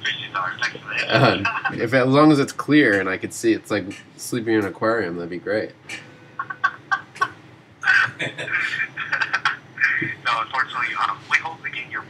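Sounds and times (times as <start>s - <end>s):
laughter over a telephone: 6.4s - 9.7s.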